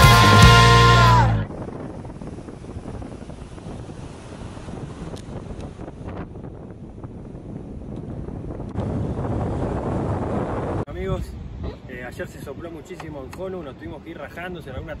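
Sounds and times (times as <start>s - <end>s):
ocean waves breaking: 0.0s - 6.2s
wind buffeting microphone: 1.4s - 15.0s.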